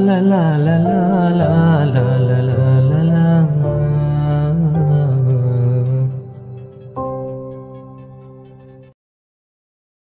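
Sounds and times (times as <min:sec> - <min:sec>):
person singing wordless melody: 0:00.0 - 0:08.2
sustained instrumental backing: 0:00.0 - 0:08.9.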